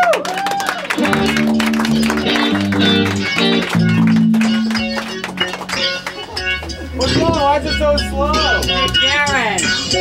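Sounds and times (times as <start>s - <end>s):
guitar chords: 0.9s - 10.0s
sharp percussive hits: 1.0s - 6.4s.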